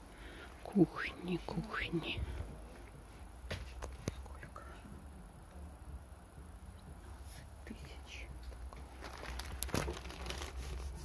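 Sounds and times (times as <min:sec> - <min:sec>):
low background hum: 0:00.0 - 0:11.0
faint whispering: 0:00.6 - 0:02.8, 0:03.9 - 0:05.8, 0:07.1 - 0:08.6.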